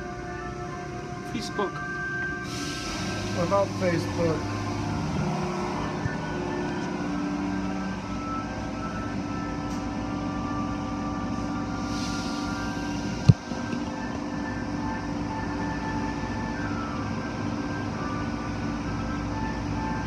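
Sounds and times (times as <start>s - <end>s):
car wash machinery rumbling: 2.4s - 20.0s.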